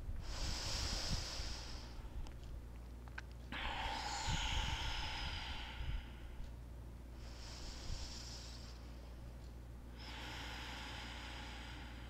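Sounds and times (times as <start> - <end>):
slow breathy exhale: 0.2 - 2.1, 3.5 - 6.5, 7.2 - 9.0, 9.9 - 12.0.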